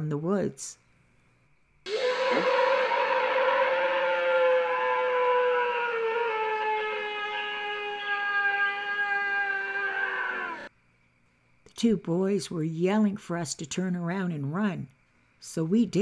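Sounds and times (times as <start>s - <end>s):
creature howling scream: 1.9s - 10.7s.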